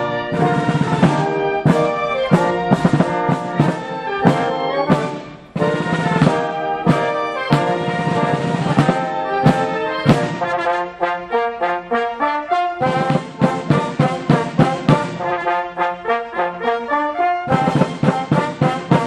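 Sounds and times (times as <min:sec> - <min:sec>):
drum strokes: 0:00.0 - 0:10.8, 0:12.8 - 0:15.6, 0:17.5 - 0:19.0
wind band playing: 0:00.0 - 0:19.0.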